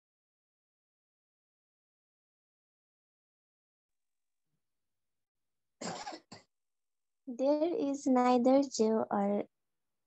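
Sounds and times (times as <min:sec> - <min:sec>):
person clearing throat: 0:05.8 - 0:06.5.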